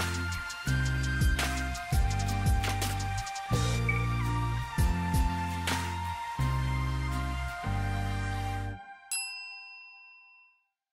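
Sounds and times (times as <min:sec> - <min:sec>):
bell-like chime: 0:09.1 - 0:10.9.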